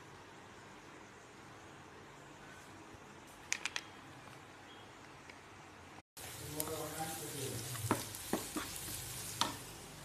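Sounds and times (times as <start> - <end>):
onions sizzling in a pan: 6.2 - 10.0
spatula knocking against pan: 7.9 - 8.8.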